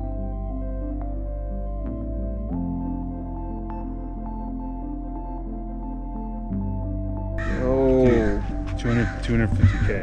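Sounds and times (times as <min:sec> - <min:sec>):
soft ambient music: 0:00.0 - 0:10.0
man speaking quick words: 0:07.6 - 0:10.0.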